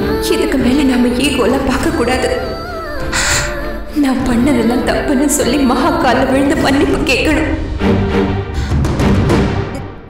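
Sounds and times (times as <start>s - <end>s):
melodramatic background score: 0.0s - 10.0s
hissy breathy sound: 3.1s - 3.9s.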